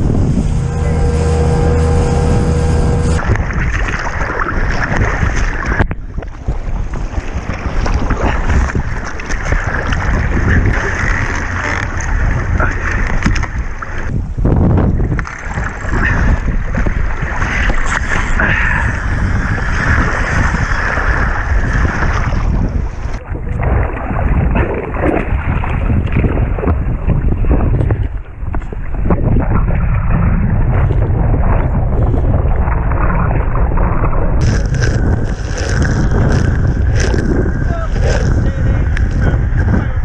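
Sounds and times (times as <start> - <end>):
sea water splashing against hull: 0.0 - 40.0
wind buffeting microphone: 0.0 - 40.0.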